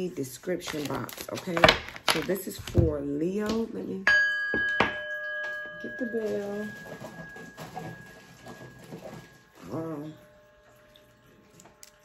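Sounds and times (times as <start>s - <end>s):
small bell ringing: 4.1s - 8.8s.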